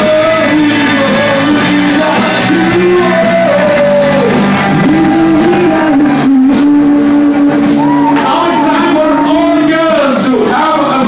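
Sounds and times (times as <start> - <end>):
singer holding long note: 0.0 - 10.2
rock band playing: 0.0 - 11.0.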